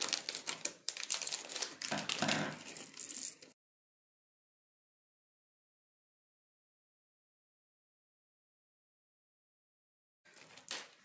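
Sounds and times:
candies clicking in hands: 0.0s - 3.4s.

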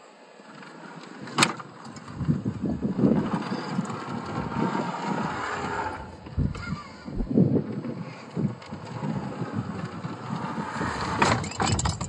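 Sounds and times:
faint electric motor whine: 0.0s - 11.3s.

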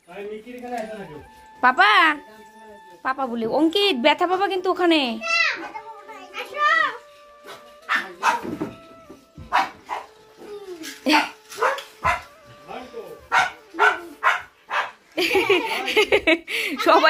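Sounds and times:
dog barking: 7.5s - 8.6s, 9.4s - 10.1s, 11.1s - 12.3s, 13.3s - 15.0s.

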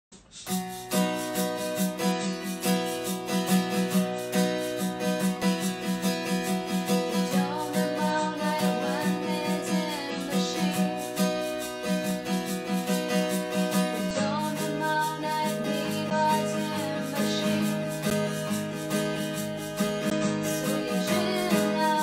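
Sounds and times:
acoustic guitar strumming: 0.3s - 22.0s
person singing softly: 7.1s - 11.2s, 14.0s - 18.3s, 20.4s - 22.0s.

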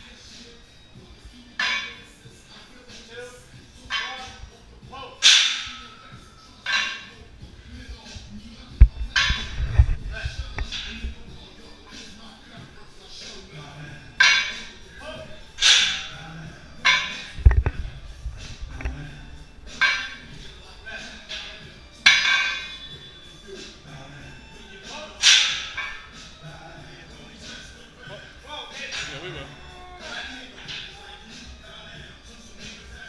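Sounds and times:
background music: 0.0s - 33.0s.

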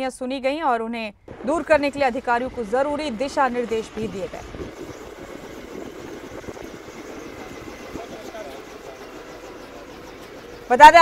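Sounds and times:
outdoor background noise: 0.0s - 11.0s
faint voices talking: 1.3s - 11.0s.

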